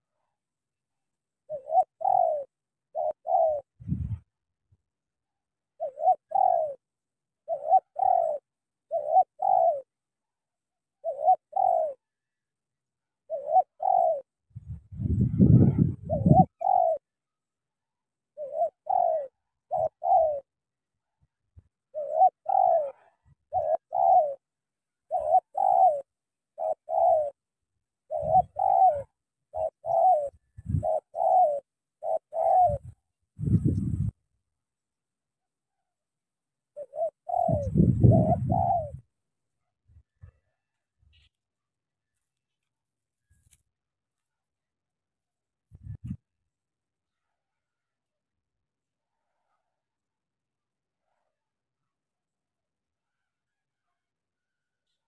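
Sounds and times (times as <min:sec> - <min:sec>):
dove cooing: 0:01.4 - 0:04.2, 0:05.8 - 0:10.0, 0:11.0 - 0:12.4, 0:13.2 - 0:17.2, 0:18.3 - 0:20.6, 0:21.6 - 0:27.4, 0:28.0 - 0:34.2, 0:36.7 - 0:39.1.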